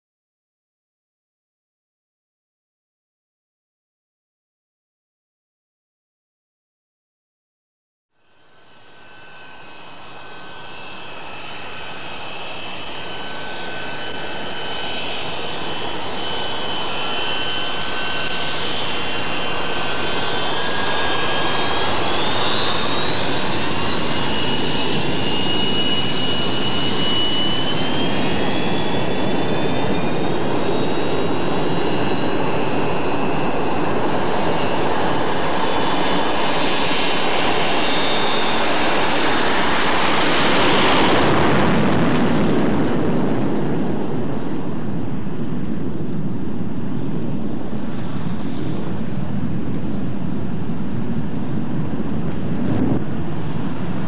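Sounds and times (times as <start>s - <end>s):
jet engines whining: 8.4s - 54.0s.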